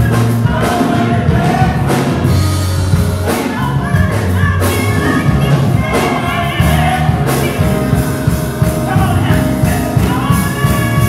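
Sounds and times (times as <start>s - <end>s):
bass notes: 0.0s - 11.0s
gospel choir singing: 0.0s - 11.0s.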